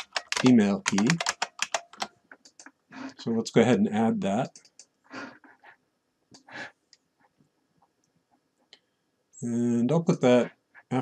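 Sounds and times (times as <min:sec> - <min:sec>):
computer keyboard typing: 0:00.0 - 0:02.7, 0:04.4 - 0:04.9.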